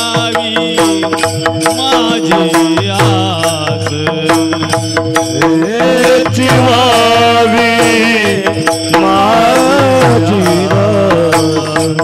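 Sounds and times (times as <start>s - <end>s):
men singing devotional chant: 0.0s - 12.0s
harmonium drone: 5.3s - 12.0s.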